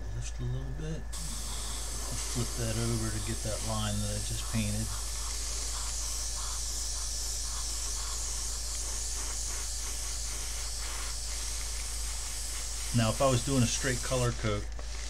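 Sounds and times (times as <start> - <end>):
airbrush spraying hiss: 1.1 - 15.0.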